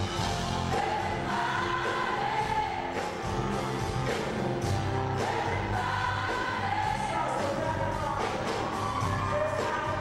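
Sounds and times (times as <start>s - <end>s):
voices singing together: 0.5s - 3.5s, 4.5s - 7.7s.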